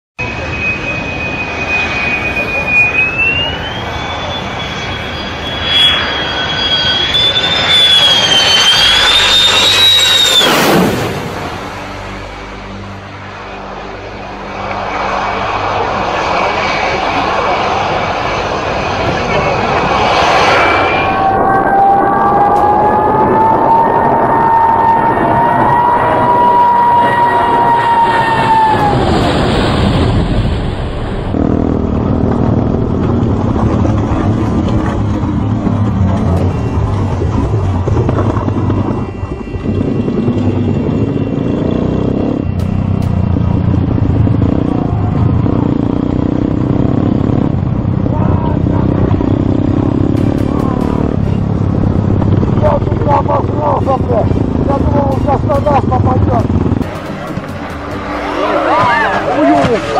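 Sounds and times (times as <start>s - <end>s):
jet engine whine and roar: 0.2s - 59.9s
low jet passing: 0.2s - 59.9s.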